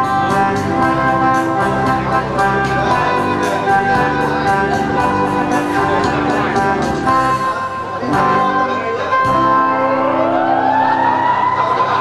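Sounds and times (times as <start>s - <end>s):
held chord: 0.0s - 12.0s
lap steel guitar glissando: 0.0s - 12.0s.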